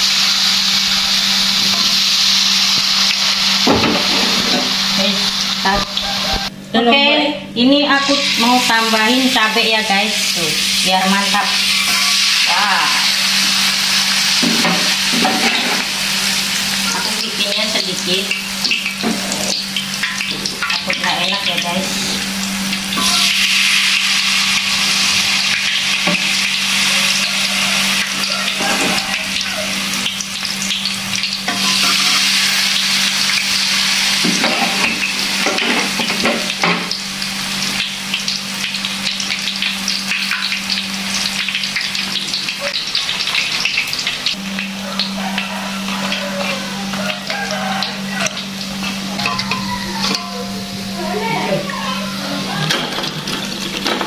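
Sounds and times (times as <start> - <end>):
batter sizzling in hot oil: 0.0 - 6.5, 7.8 - 54.0.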